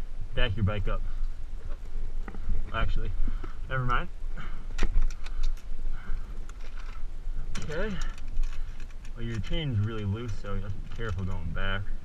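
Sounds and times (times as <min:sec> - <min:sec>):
steady low rumble: 0:00.0 - 0:12.0
light clicks and rattles of chain: 0:06.4 - 0:11.7.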